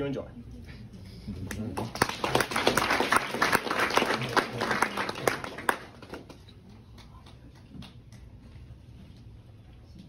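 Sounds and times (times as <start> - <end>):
audience applauding: 1.5 - 8.2.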